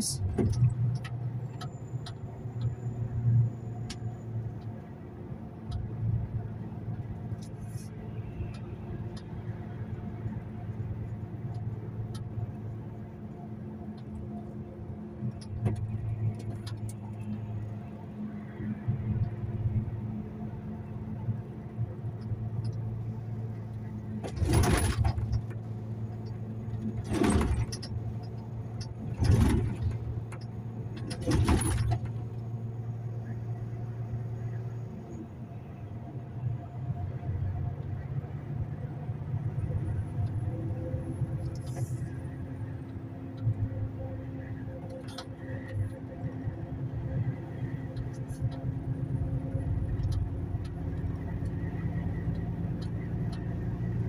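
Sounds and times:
diesel engine drone: 0.0 - 54.0
road noise: 0.0 - 54.0.

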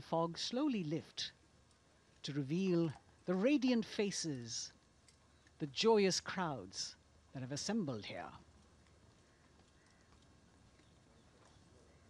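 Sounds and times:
horse hooves clip-clopping: 8.5 - 12.0.

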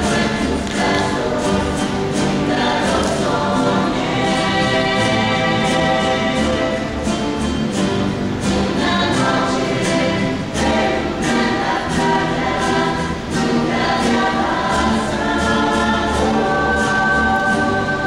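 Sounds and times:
ensemble singing in chorus: 0.0 - 18.0
strummed guitars and double bass: 0.0 - 18.0.

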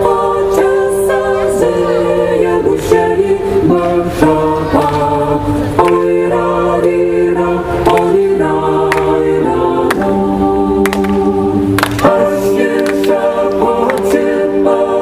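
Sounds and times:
mixed choir singing in harmony: 0.0 - 15.0.

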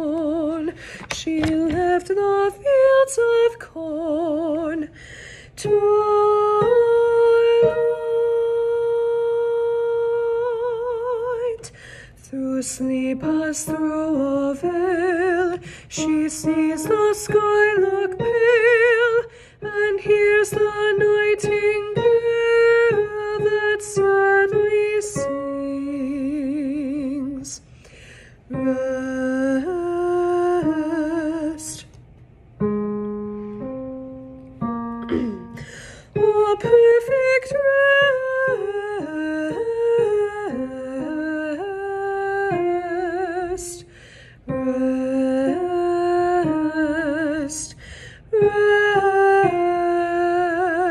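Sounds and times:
woman singing a melody: 0.0 - 27.7, 28.4 - 32.0, 34.6 - 50.9
woman taking a breath: 0.8 - 1.1, 5.0 - 5.6, 11.7 - 12.2, 27.7 - 28.5, 35.5 - 36.1, 43.9 - 44.4, 47.8 - 48.3.

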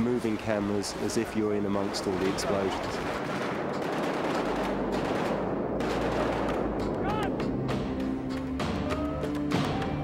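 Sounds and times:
rapid gunfire: 2.1 - 7.2.

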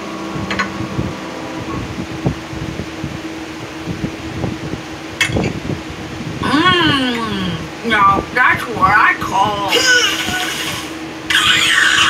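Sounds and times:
high squealing cartoon voice: 9.6 - 12.0
cartoon vomiting sound effect: 9.7 - 12.0.

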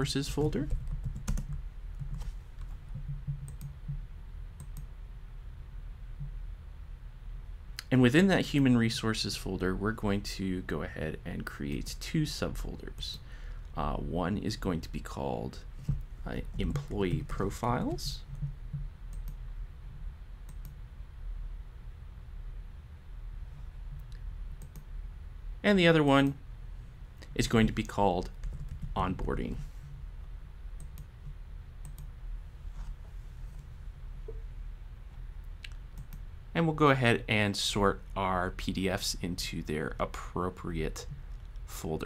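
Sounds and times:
steady low hum: 0.0 - 42.0
keyboard and mouse clicks: 0.6 - 4.0.

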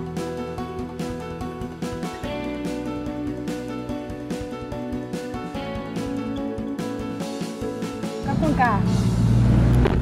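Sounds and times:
vehicle engines idling and passing: 8.2 - 10.0.

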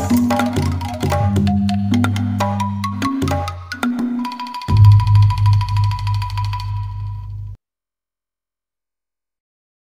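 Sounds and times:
bamboo ensemble music: 0.0 - 7.6.

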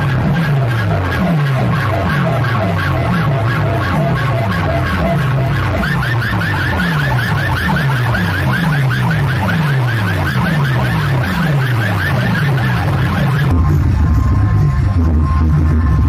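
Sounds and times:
falling bass sweep: 0.0 - 16.0
siren-like electronic chirps: 0.0 - 16.0.

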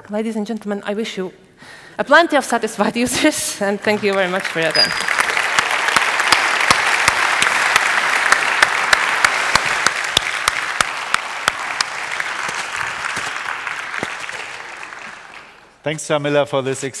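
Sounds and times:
audience applauding: 3.8 - 15.8.

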